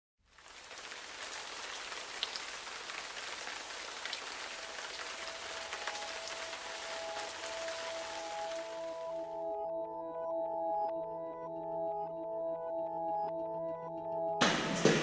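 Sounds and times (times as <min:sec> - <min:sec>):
steady rain falling: 0:00.2 - 0:09.3
sharp drips: 0:00.3 - 0:09.2
music with long held notes: 0:04.7 - 0:15.0.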